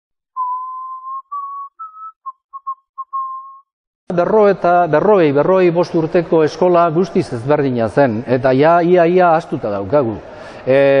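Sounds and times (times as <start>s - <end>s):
whistle-like jingle tune: 0.4s - 3.7s.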